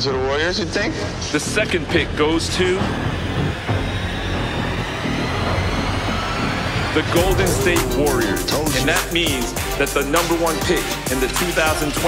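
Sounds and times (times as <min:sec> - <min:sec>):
low rumbling suspense music drone: 0:00.5 - 0:12.0.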